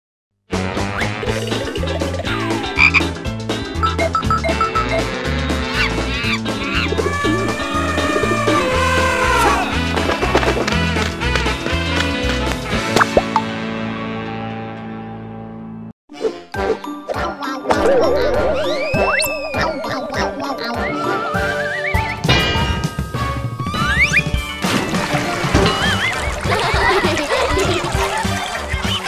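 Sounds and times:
cartoon theme music: 0.5s - 11.6s, 16.1s - 29.0s
falling whistle-like glide: 17.8s - 22.2s.

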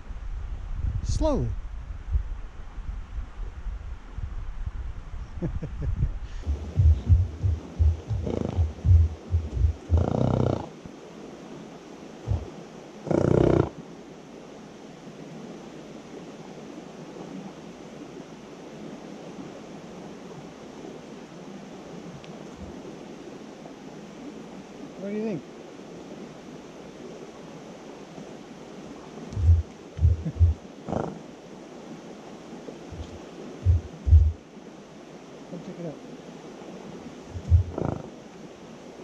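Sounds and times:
wind buffeting microphone: 0.2s - 10.6s, 12.3s - 12.5s, 29.3s - 31.1s, 32.9s - 34.4s, 37.2s - 38.1s
horse snorting: 6.4s - 10.7s, 13.1s - 13.7s, 29.5s - 31.2s, 37.3s - 38.1s.

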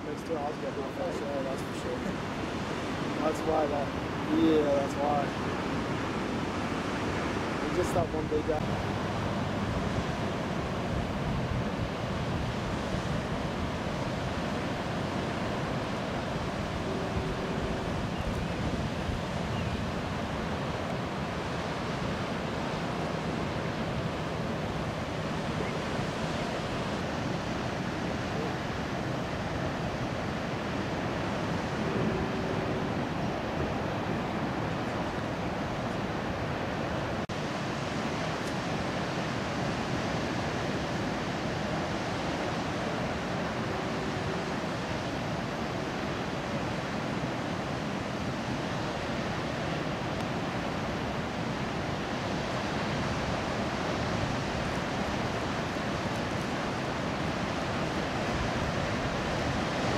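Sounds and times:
ocean surf breaking: 0.0s - 59.9s
wind noise on microphone: 5.4s - 59.9s.

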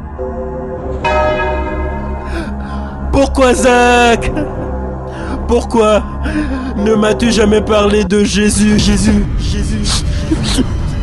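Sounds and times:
deep bell strike: 0.2s - 2.4s.

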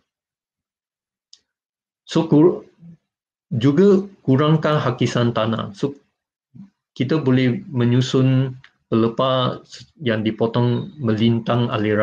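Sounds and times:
person speaking: 2.1s - 2.9s, 3.5s - 5.9s, 7.0s - 12.0s.

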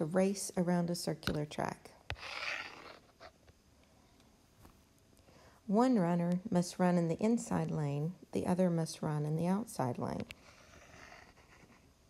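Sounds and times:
stylus scratching on tablet screen: 2.1s - 3.4s, 10.1s - 11.9s.

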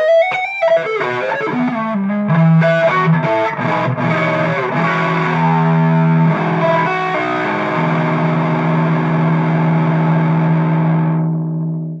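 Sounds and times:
overdriven electric guitar chord: 0.0s - 12.0s.

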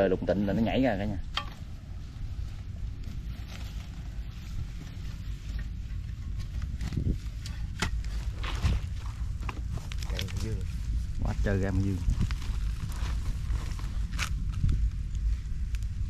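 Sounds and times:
steady low rumble: 0.0s - 16.0s
digging tool scraping earth: 2.9s - 14.8s.

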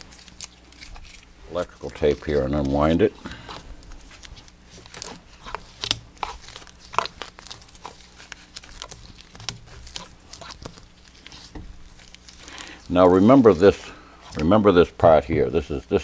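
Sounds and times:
tape being peeled off: 0.0s - 14.6s.

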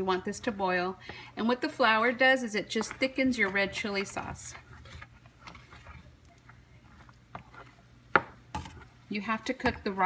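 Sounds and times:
spoon stirring thick sauce: 0.9s - 10.0s.

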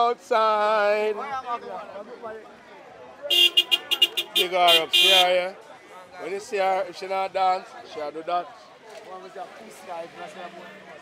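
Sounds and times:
faint background voices: 0.0s - 11.0s
car horn short beeps: 3.3s - 5.2s.

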